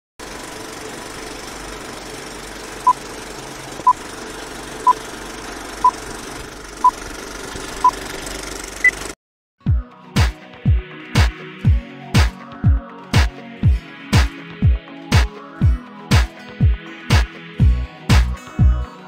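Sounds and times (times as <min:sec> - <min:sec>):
rattling hissing projector noise: 0:00.2 - 0:08.8
electronic music with heavy beat: 0:09.7 - 0:18.8.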